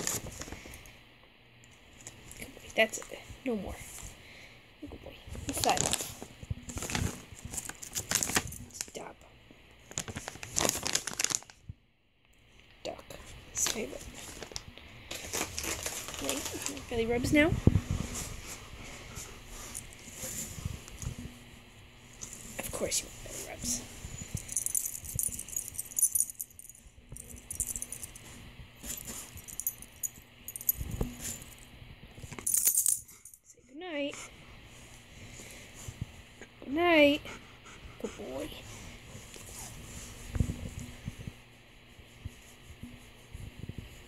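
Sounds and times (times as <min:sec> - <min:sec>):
plastic pouch crinkling: 0:06.7 - 0:09.0, 0:09.9 - 0:11.6, 0:14.3 - 0:16.8
dog collar tags jingling: 0:24.4 - 0:28.2.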